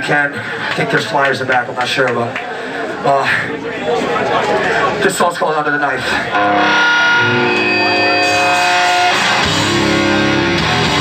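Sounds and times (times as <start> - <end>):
distorted electric guitar chords: 6.2 - 11.0.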